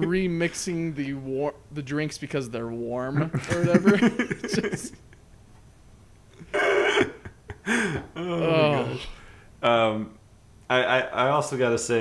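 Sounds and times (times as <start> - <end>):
man laughing: 3.2 - 5.2, 6.4 - 9.0.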